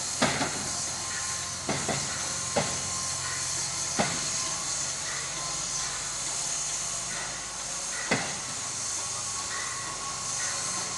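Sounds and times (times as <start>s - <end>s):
steam locomotive hissing: 0.0s - 10.9s.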